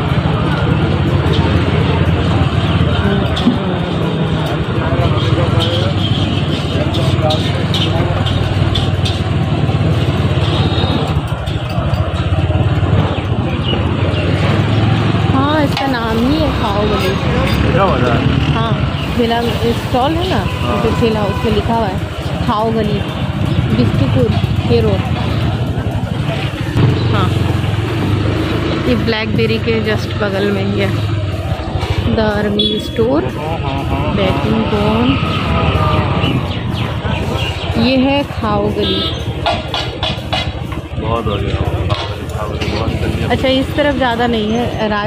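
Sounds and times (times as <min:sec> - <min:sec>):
motorbike engine running: 0:00.0 - 0:45.0
people's voices in street: 0:00.0 - 0:45.0.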